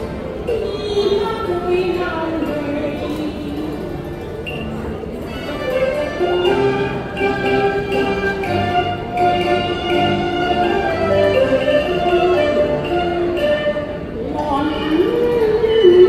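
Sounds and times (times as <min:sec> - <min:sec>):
bowed strings: 0:00.0 - 0:16.0
opera duet singing: 0:14.2 - 0:16.0.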